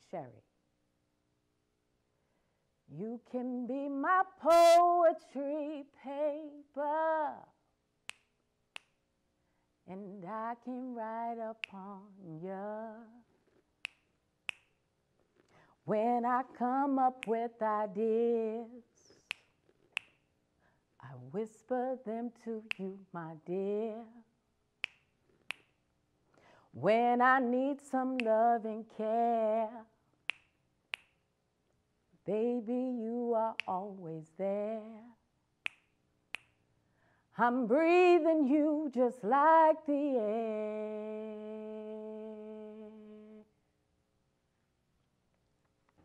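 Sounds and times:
person singing a cappella: 2.9s - 7.6s, 9.8s - 13.3s, 15.8s - 19.4s, 21.0s - 24.3s, 26.6s - 30.0s, 32.2s - 35.2s, 37.3s - 43.6s
finger snaps: 8.0s - 9.0s, 11.5s - 12.0s, 13.8s - 14.8s, 17.1s - 17.6s, 18.9s - 20.3s, 22.6s - 23.1s, 24.8s - 25.8s, 28.1s - 28.5s, 30.2s - 31.3s, 33.4s - 34.0s, 35.6s - 36.6s.

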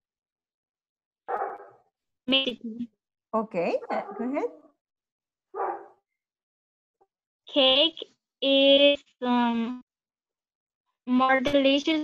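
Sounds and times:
dog bark: 1.3s - 1.9s, 3.9s - 4.3s, 5.5s - 6.0s.

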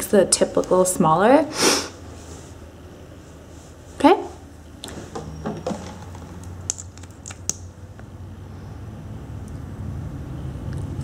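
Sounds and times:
low room hum: 0.0s - 11.0s
makeup clicks and taps: 5.6s - 7.6s.

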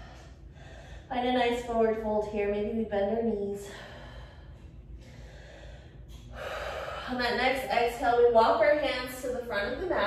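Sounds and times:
woman breathing: 0.0s - 1.2s, 3.5s - 7.7s.

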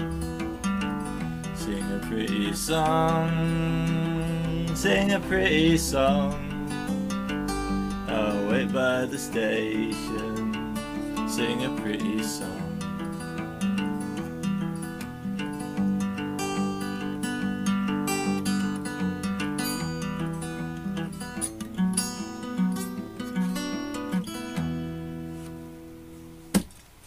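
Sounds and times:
acoustic guitar playing: 0.0s - 27.0s.

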